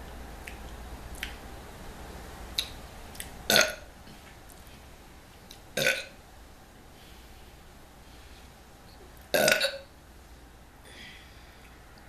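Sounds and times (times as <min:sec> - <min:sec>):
woman burping: 0:03.5 - 0:03.8, 0:05.8 - 0:06.1, 0:09.3 - 0:09.9.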